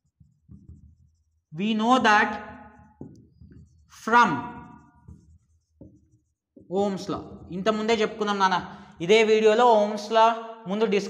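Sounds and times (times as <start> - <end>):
marker scratching on whiteboard: 0.0 - 8.4
man speaking: 1.6 - 2.5, 4.0 - 4.7, 6.7 - 11.0.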